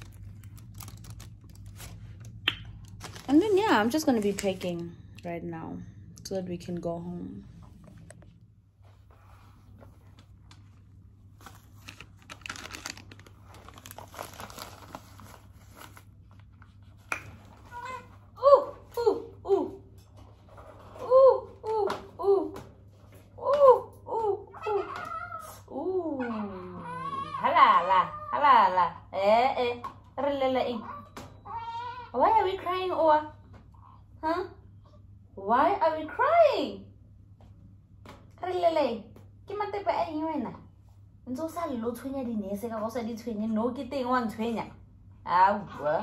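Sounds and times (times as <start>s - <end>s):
crumpled wrapper crinkling: 0.0s - 4.8s, 11.2s - 16.8s
newborn baby crying: 24.6s - 28.7s, 30.8s - 32.4s.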